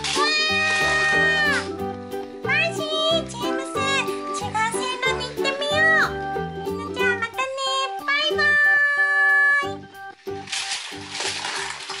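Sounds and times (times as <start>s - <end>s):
children's music with steady beat: 0.0s - 11.4s.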